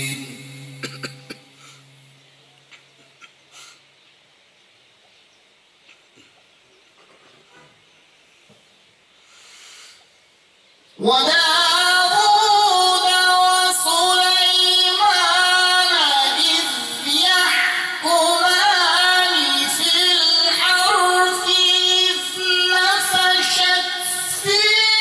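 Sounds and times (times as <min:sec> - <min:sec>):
man reciting melodically into microphone: 0:00.0 - 0:01.3, 0:11.0 - 0:25.0.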